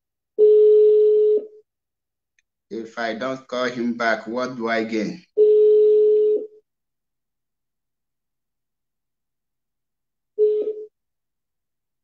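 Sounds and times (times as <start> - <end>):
electronic telephone tone: 0.4 - 1.6, 5.4 - 6.6, 10.4 - 10.9.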